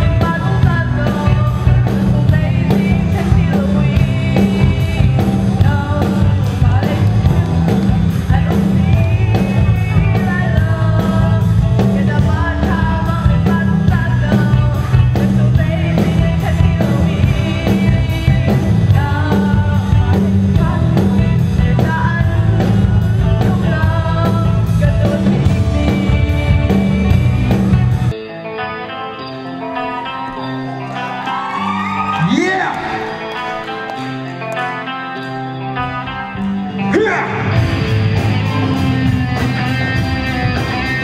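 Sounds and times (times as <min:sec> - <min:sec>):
woman singing through microphone: 0:00.0 - 0:27.6
amplified backing music: 0:00.0 - 0:41.0.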